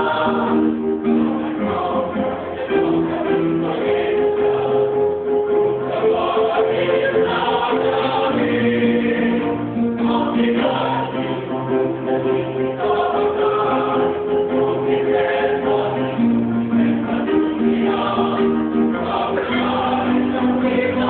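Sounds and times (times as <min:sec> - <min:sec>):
choir singing in unison: 0:00.0 - 0:21.0
instrumental accompaniment with bass: 0:00.0 - 0:21.0.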